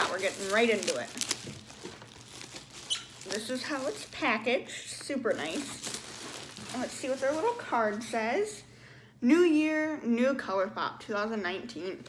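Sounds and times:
bubble wrap crinkling: 0.0 - 8.4.

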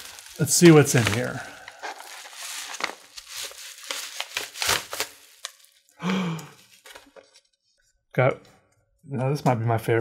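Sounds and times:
paper mailer crinkling: 0.0 - 5.9, 6.5 - 7.5.

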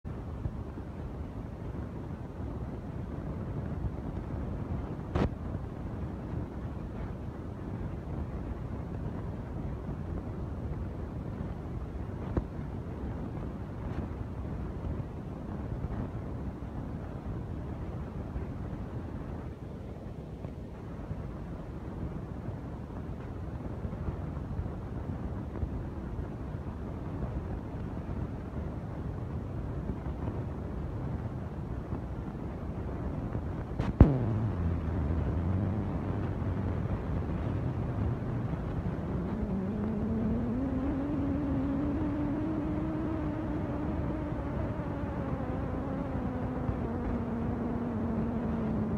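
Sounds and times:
wind rumble on microphone: 0.0 - 48.9.

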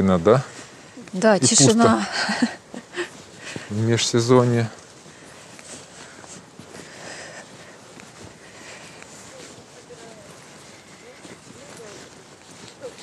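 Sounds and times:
faint wind: 0.0 - 13.0
soft hiss: 0.0 - 13.0.

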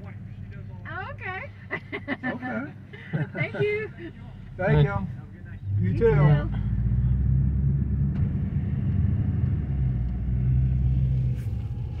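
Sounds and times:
car engine running: 0.0 - 12.0.

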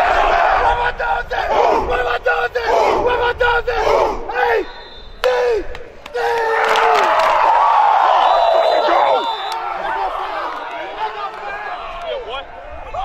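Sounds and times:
group shouting in call-and-response: 0.0 - 12.2.

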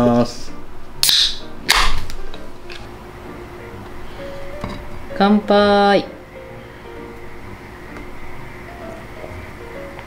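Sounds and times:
beer can tab popping: 1.0 - 2.8.

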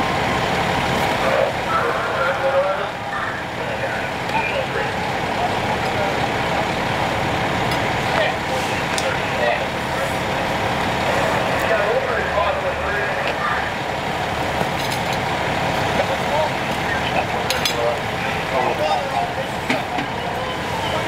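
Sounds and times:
fire truck engine running: 0.0 - 21.0
indistinct voices: 0.0 - 21.0.

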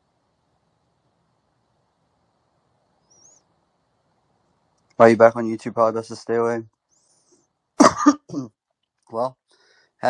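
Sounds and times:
person coughing: 7.8 - 8.5.

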